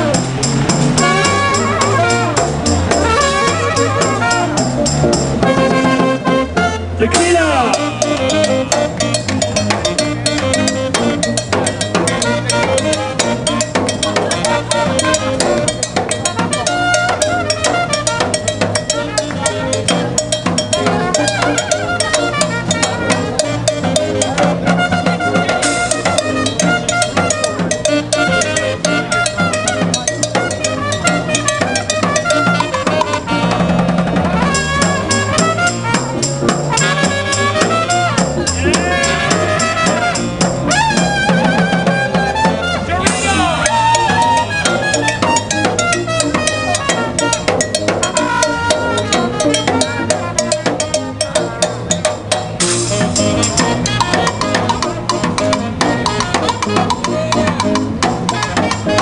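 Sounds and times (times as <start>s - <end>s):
saxophone: 0.0s - 59.0s
snare drum beat: 31.1s - 50.8s.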